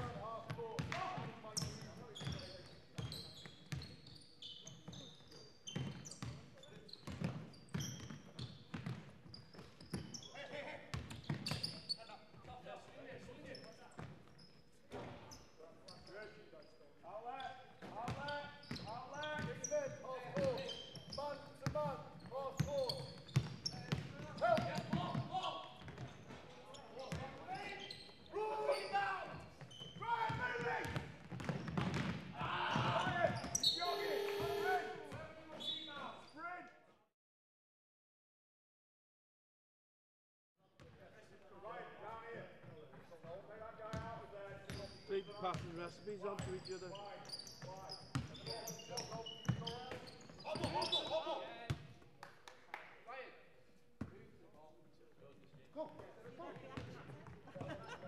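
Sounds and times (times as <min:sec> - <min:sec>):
basketball dribbled on wooden court: 0:07.0 - 0:10.1, 0:29.9 - 0:32.2
players shouting: 0:32.4 - 0:35.1
trainers squeaking: 0:33.4 - 0:34.9.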